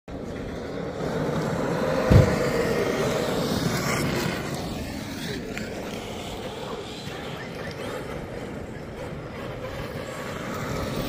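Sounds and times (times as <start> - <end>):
rc truck motor whining: 0.1 - 11.0
low thump: 2.1 - 2.4.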